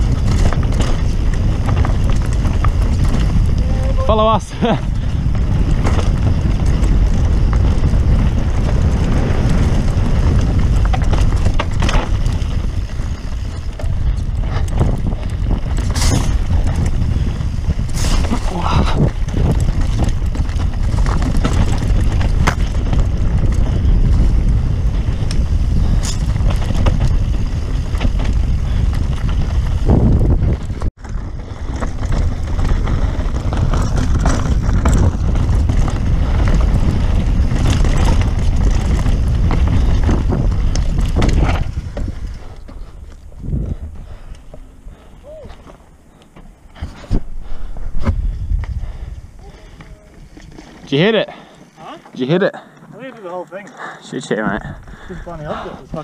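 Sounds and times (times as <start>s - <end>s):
bike knocks and rattles: 0.0s - 49.0s
wind rumble on microphone: 0.0s - 51.5s, 54.4s - 56.0s.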